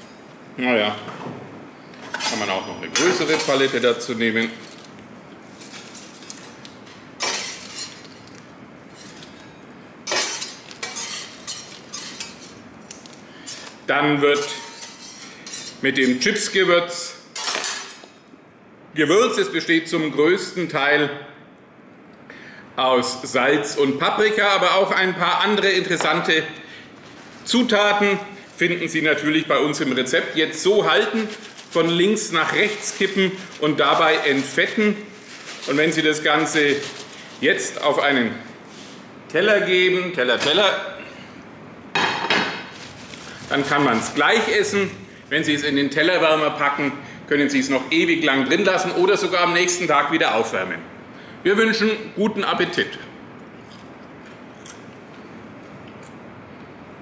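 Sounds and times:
metal spatula scraping griddle: 14.4s - 15.8s.

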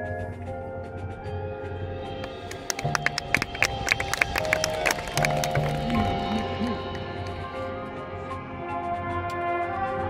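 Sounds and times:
sharp percussion hits: 1.8s - 9.0s
marching band playing: 1.8s - 10.0s.

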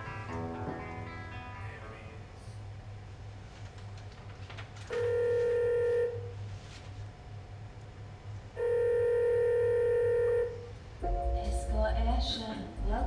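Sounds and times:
telephone ringing tone: 4.9s - 6.3s, 8.6s - 10.6s.

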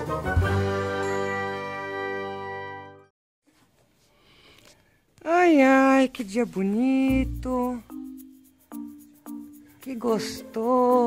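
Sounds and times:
bright ringing chord jingle: 0.9s - 2.6s.

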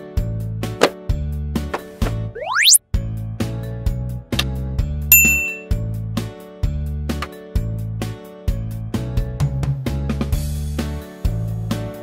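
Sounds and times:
children's music with bouncing bass: 2.2s - 2.8s
bright bell-like ding: 5.1s - 5.7s.

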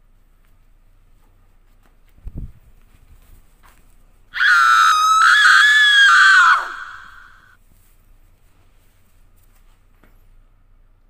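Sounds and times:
loud high-pitched scream: 4.4s - 7.6s.

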